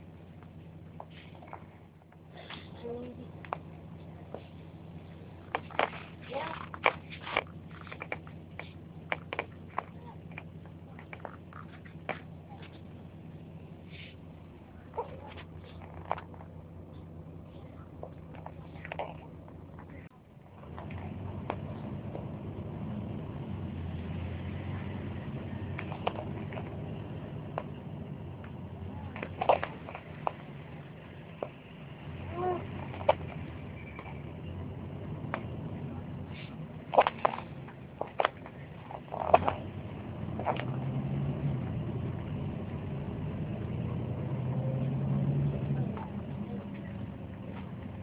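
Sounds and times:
road traffic rumble: 0.0 - 48.0.

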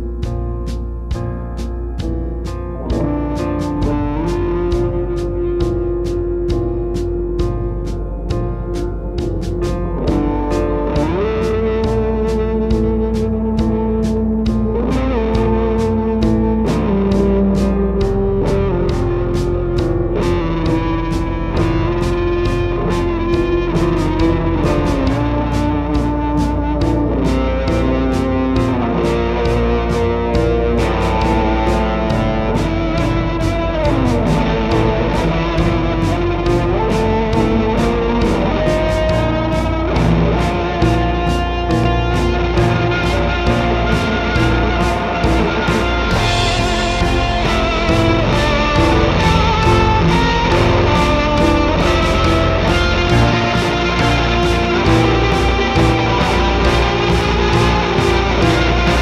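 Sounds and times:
drum kit beat: 0.0 - 59.0
electric guitar: 0.0 - 59.0
gliding synthesizer notes: 0.0 - 59.0.

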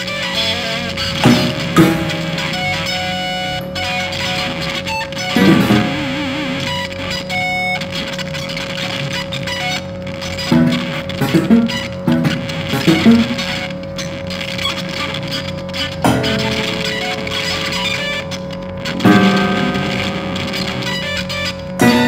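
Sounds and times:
electric guitar plucked notes: 0.0 - 22.0
electronic drone tone: 0.0 - 22.0.

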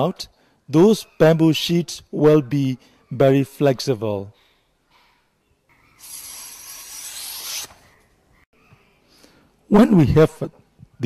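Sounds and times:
blade scraping bamboo: 6.0 - 7.8.

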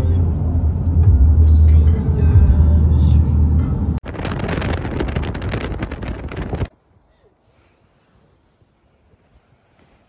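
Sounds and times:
road and engine rumble in car: 0.0 - 6.8.

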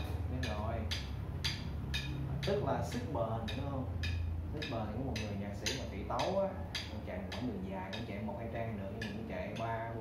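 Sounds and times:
metronome ticking: 0.0 - 10.0.

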